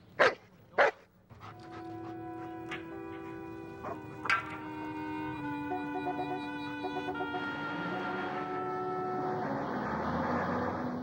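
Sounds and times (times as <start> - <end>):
dog barking: 0.2 - 1.0, 3.8 - 4.0
music: 1.4 - 9.8.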